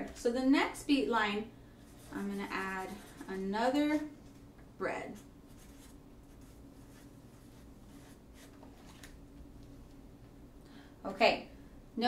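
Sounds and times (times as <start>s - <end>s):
marker scratching on paper: 1.9s - 4.1s, 5.1s - 8.6s.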